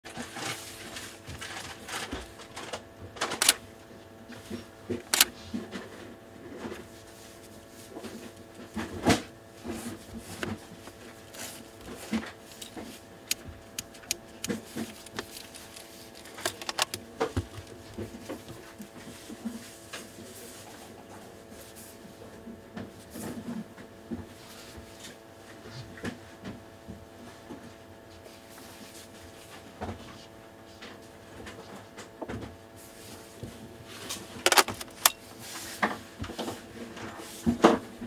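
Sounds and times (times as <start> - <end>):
camera lens handling clicks: 34.5 - 35.1.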